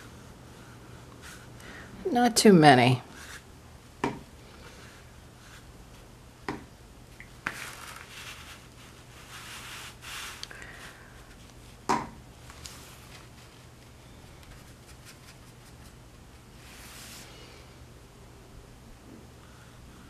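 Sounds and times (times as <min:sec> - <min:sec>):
faint low hum: 0:00.0 - 0:20.0
brush rubbing on paper: 0:07.6 - 0:10.4, 0:14.5 - 0:17.2.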